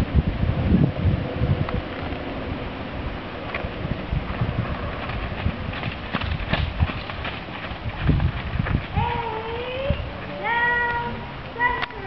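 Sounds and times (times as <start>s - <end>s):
wind: 0.0s - 12.0s
low thuds: 3.5s - 10.4s.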